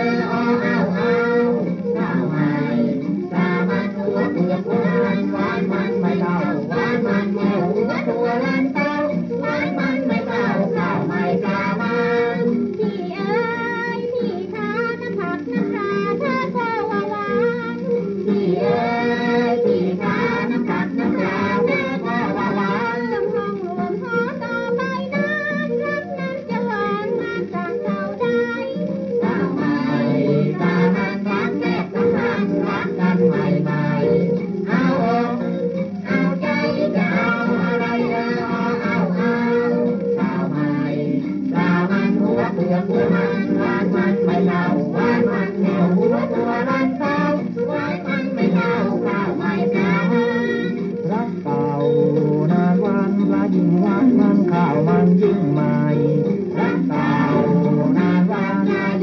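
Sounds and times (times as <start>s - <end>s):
song from shellac record: 0.0s - 59.0s.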